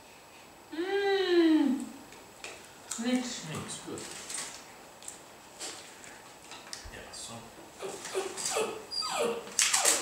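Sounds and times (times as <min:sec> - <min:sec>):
small dog whimpering: 0:07.8 - 0:10.0.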